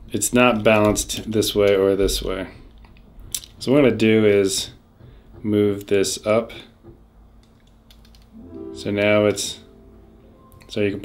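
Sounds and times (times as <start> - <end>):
faint distant piano: 8.3 - 11.0.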